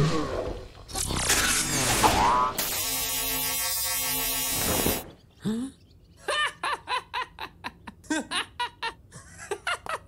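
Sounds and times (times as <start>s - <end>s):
electric buzz: 0.9s - 5.1s.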